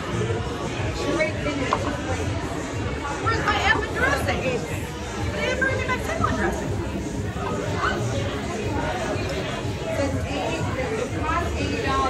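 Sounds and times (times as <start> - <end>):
restaurant chatter: 0.0 - 12.0.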